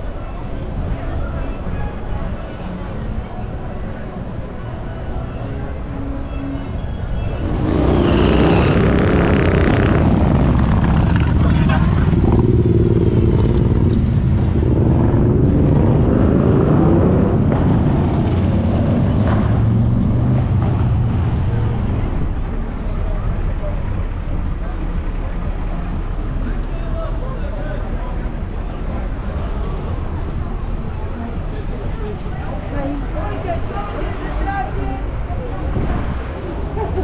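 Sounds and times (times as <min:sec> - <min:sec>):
people's voices: 0:00.0 - 0:14.1, 0:21.0 - 0:37.0
road traffic passing: 0:00.0 - 0:37.0.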